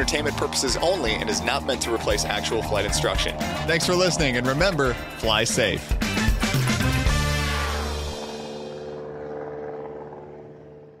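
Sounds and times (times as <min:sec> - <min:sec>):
propeller airplane engine droning: 0:00.0 - 0:11.0.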